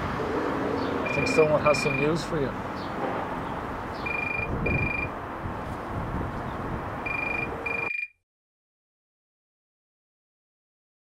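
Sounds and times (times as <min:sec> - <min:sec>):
outdoor background noise: 0:00.0 - 0:08.1
phone ringing: 0:01.1 - 0:02.2, 0:04.1 - 0:05.1, 0:07.1 - 0:08.1.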